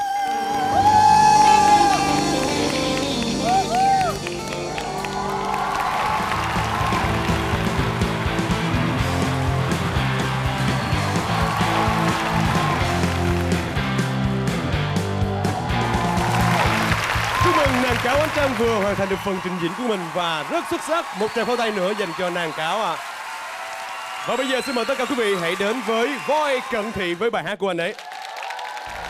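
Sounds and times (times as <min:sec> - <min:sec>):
band music: 0:00.0 - 0:20.1
audience clapping and cheering: 0:00.0 - 0:29.0.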